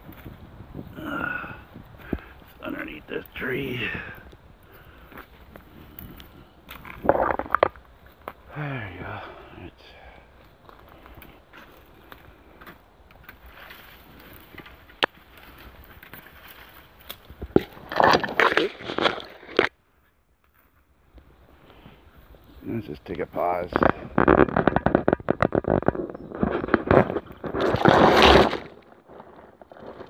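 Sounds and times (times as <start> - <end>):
twigs and leaves crackling: 0.0 - 30.0
footsteps crunching through brush: 10.4 - 21.2.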